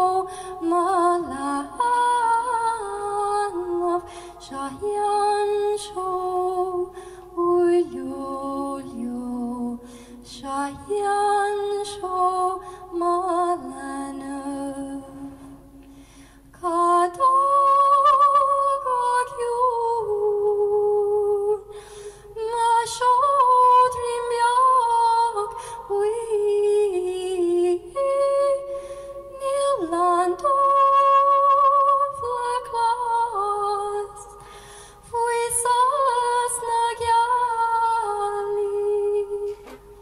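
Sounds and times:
woman singing lullaby unaccompanied: 0.0 - 15.2, 16.6 - 21.6, 22.4 - 28.7, 29.3 - 34.3, 35.1 - 39.7.

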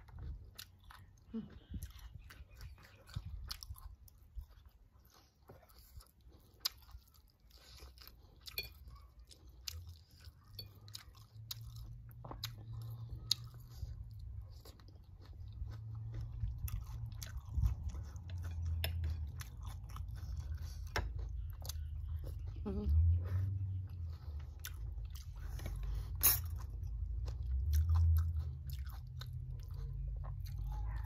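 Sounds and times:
chewing and crunching: 0.0 - 31.0.

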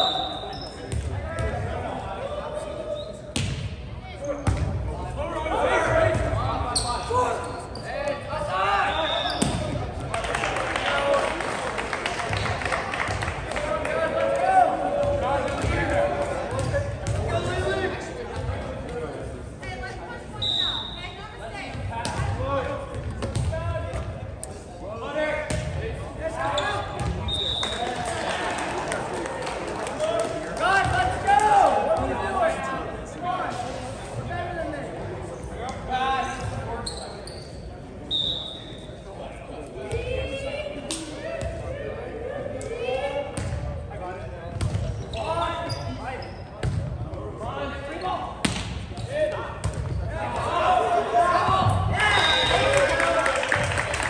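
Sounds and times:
ball hits and court impacts: 3.4 - 3.7, 48.4 - 50.4.

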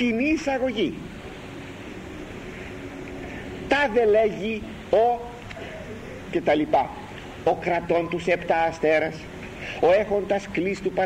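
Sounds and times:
background hiss: 0.0 - 11.0
faint low hum: 0.0 - 11.0.

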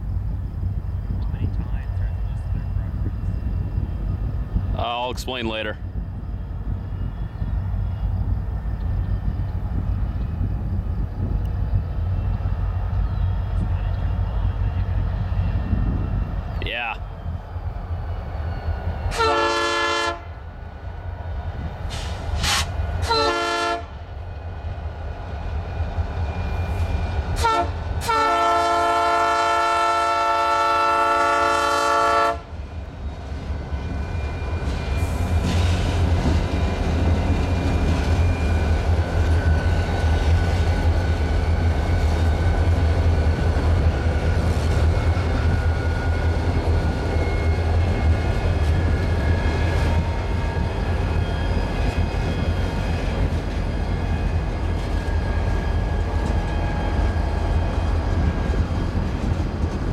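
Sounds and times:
deep rumble of locomotives: 0.0 - 59.9
locomotive horn blasts: 19.1 - 20.3, 22.4 - 24.0, 27.4 - 32.5.

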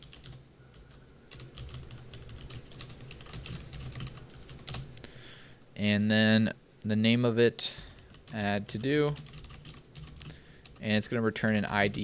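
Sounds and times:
computer keyboard typing: 0.0 - 4.9, 8.0 - 11.0.

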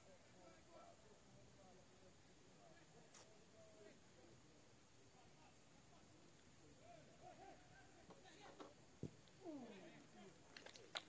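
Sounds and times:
faint high calls: 6.8 - 8.1.

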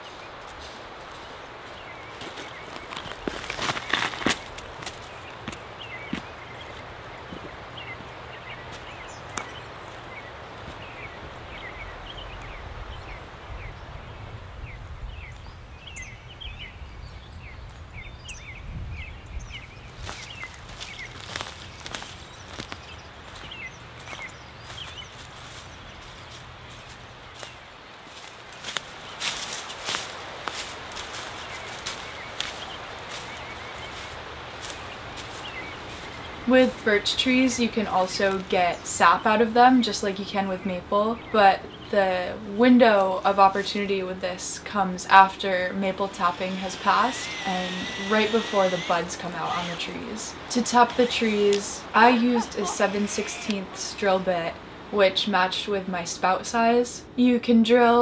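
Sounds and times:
footsteps on dry leaves: 0.0 - 11.3, 19.8 - 39.4, 42.9 - 54.0
small birds chirping: 0.0 - 55.6
low outdoor background: 0.0 - 58.0.

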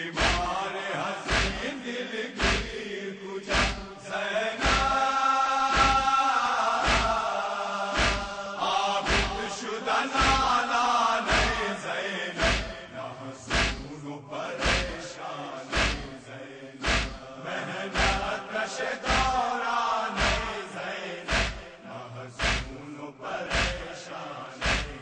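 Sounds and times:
men chanting in unison: 0.0 - 25.0
chest-beating thumps: 0.2 - 0.5, 1.3 - 1.7, 2.4 - 2.8, 3.5 - 4.0, 4.6 - 5.0, 5.7 - 6.1, 6.8 - 7.2, 8.0 - 8.4, 9.1 - 9.5, 10.2 - 10.5, 11.3 - 11.6, 12.4 - 12.8, 13.5 - 13.9, 14.6 - 15.0, 15.7 - 16.2, 16.8 - 17.2, 18.0 - 18.3, 19.0 - 19.4, 20.2 - 20.6, 21.3 - 21.8, 22.4 - 22.8, 23.5 - 24.0, 24.6 - 25.0.

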